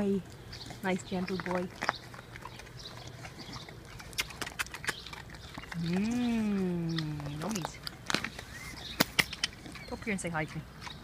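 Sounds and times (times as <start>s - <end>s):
dog chewing and licking: 0.0s - 11.0s.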